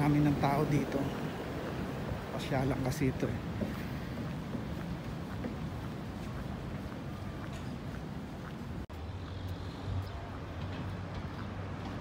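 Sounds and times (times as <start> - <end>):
low rumble of city ambience: 0.0 - 12.0.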